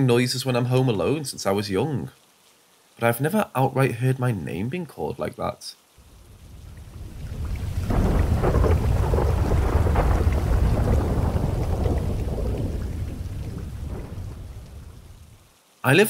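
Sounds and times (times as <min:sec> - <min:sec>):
rain: 0:00.0 - 0:16.0
thunder rolling: 0:06.2 - 0:15.4.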